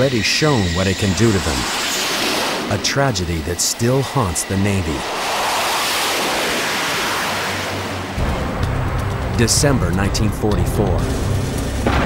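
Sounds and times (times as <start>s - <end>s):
steam venting: 0.0s - 8.0s
jet engine roaring: 0.0s - 12.0s.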